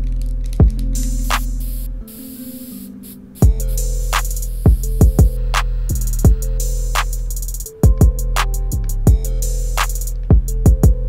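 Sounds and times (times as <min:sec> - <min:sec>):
stripped-back music: 0:00.0 - 0:11.0
spray-paint can hissing: 0:00.4 - 0:05.0
kick drum: 0:00.6 - 0:01.4, 0:03.4 - 0:03.7, 0:04.7 - 0:06.6, 0:07.8 - 0:09.4, 0:10.3 - 0:11.0.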